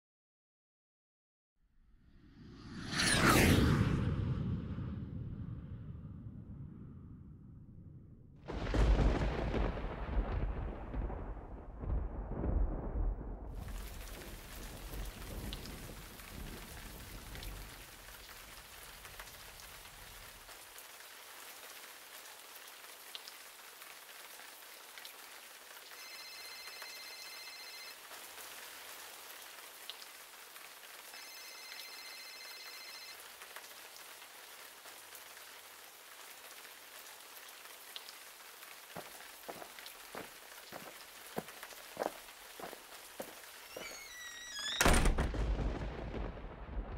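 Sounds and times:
thunder rumbling: 8.5 - 18.0, 44.9 - 46.9
steady rain: 8.5 - 46.9.

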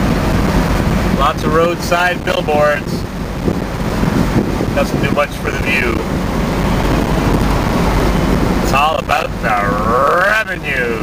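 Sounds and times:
road and wind noise inside car: 0.0 - 11.0.

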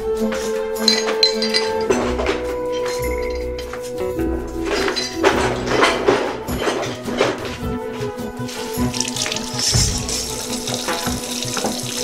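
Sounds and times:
background music: 0.0 - 12.0
tap water running into sink: 8.7 - 12.0.

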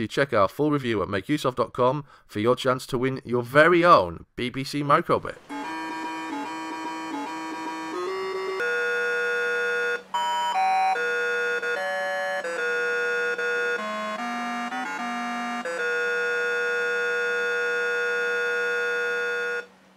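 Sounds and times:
electronic beeping tune: 5.5 - 19.7.

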